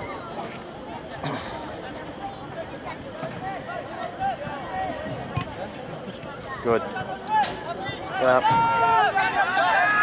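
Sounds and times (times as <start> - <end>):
loud shout: 7.3 - 10.0.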